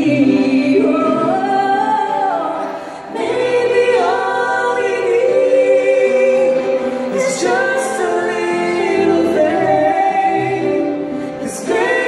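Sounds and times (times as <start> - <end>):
pop ballad with layered vocals: 0.0 - 12.0.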